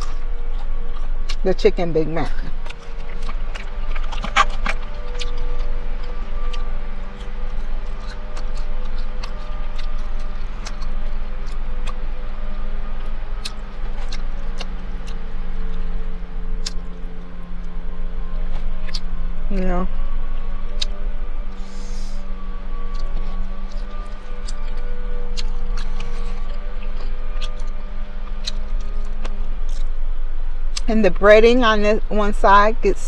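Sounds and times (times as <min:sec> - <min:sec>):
chewing and food handling clicks: 0:00.0 - 0:01.4, 0:02.3 - 0:12.1, 0:13.0 - 0:17.4, 0:22.8 - 0:29.9
music of long held notes: 0:00.0 - 0:33.0.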